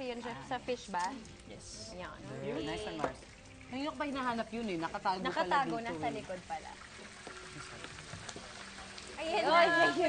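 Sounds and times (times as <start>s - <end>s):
faint kitchen noise: 0.0s - 10.0s.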